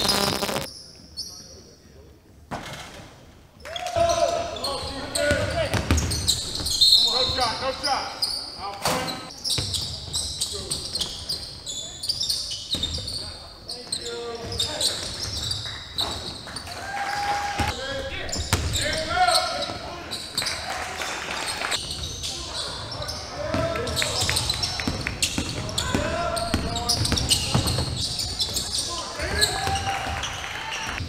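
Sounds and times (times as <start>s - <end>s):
sneakers squeaking: 0.0s - 1.4s, 4.6s - 16.6s, 17.6s - 20.7s, 21.7s - 30.4s.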